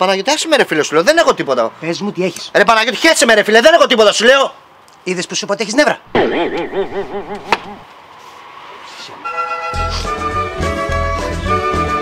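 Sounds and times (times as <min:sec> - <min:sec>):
sharp knock: 0:06.1 - 0:07.8.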